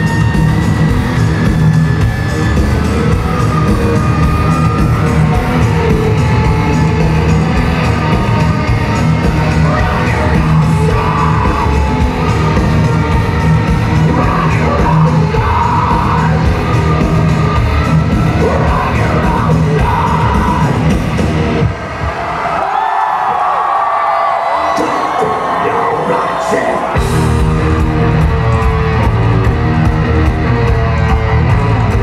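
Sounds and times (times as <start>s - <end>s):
metal band playing live: 0.0s - 22.5s, 25.0s - 32.0s
crowd yelling and cheering: 0.0s - 32.0s.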